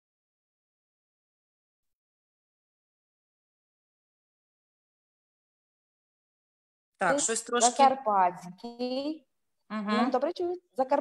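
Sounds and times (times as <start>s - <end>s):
person's voice: 7.0s - 9.1s, 9.7s - 11.0s.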